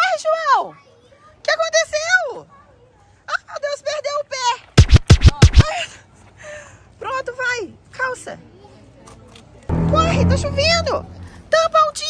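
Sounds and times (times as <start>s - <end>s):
loud thumps: 4.8s - 5.7s, 9.7s - 11.6s.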